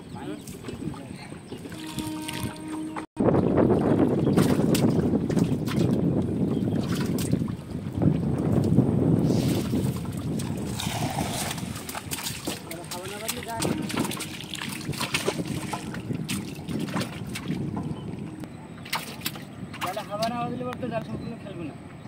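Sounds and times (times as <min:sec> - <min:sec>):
cast net splashing into river: 0:18.8 - 0:20.0.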